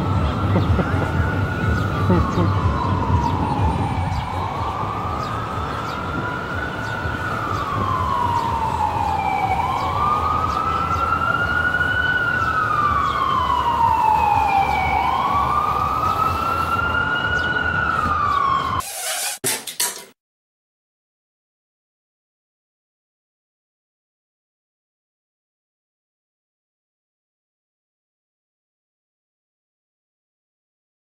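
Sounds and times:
emergency vehicle siren wailing: 0.0 - 18.8
city traffic rumble: 0.0 - 19.4.

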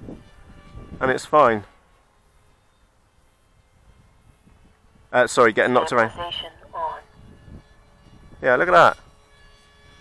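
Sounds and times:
quiet outdoor background: 0.0 - 10.0
man's voice: 5.4 - 6.5.

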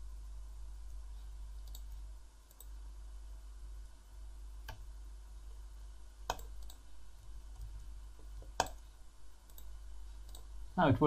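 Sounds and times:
low steady hum: 0.0 - 11.0
computer mouse clicks: 1.6 - 2.8, 4.6 - 4.9, 6.2 - 6.8, 7.5 - 10.5.

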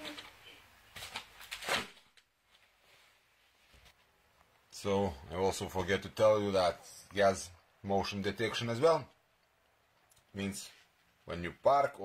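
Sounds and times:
rubbing and rustling of handling: 0.0 - 4.6.

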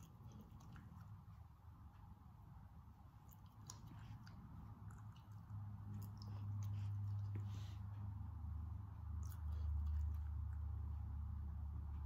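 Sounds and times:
puppy chewing treat crunching: 0.0 - 1.4, 3.2 - 7.8
low room hum: 0.0 - 12.0.

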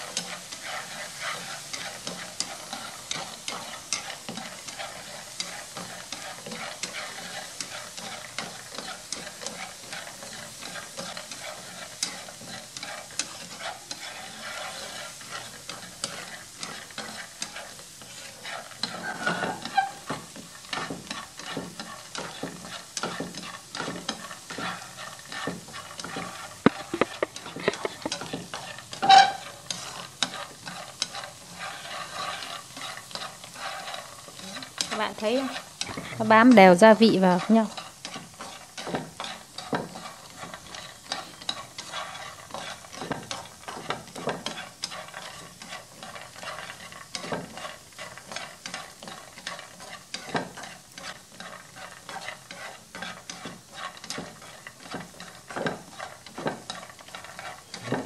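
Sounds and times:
nuts rattling and scraping in pan: 0.0 - 58.0.

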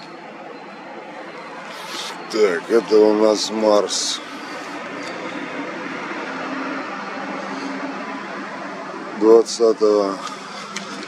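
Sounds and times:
distant vehicles: 0.0 - 11.0.

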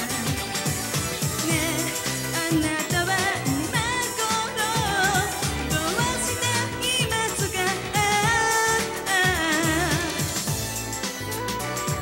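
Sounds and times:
girls group singing pop: 0.0 - 10.6
pop backing music: 0.0 - 12.0.

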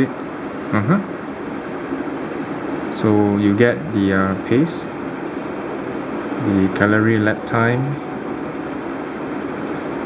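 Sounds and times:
air conditioning hiss: 0.0 - 10.0.

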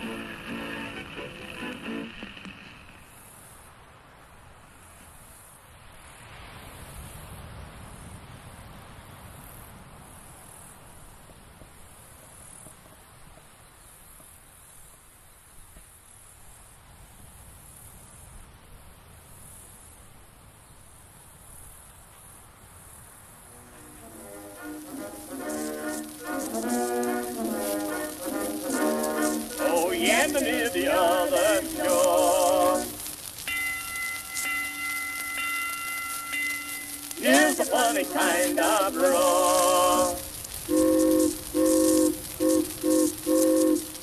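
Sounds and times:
insects trilling: 23.4 - 44.0
bell-like chime tones: 33.4 - 39.2.

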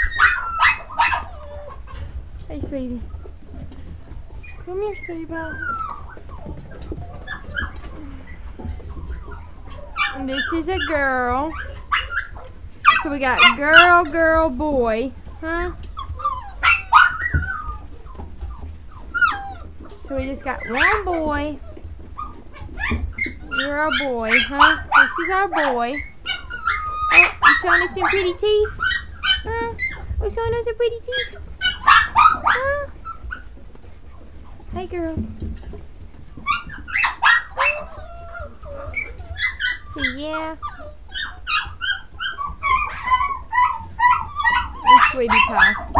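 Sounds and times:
puppy whining and whimpering: 0.0 - 45.9.

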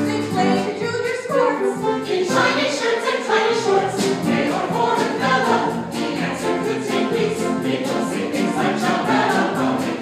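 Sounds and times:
mixed choir singing in harmony: 0.0 - 10.0.

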